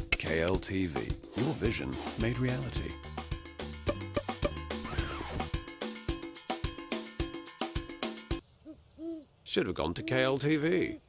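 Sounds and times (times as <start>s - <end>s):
upbeat jingle music: 1.4s - 7.5s
owl hoots: 8.6s - 11.0s.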